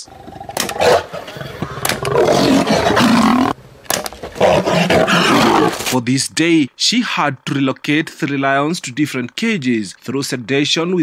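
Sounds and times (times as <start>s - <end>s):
lion roaring: 0.1s - 3.6s, 4.4s - 5.9s.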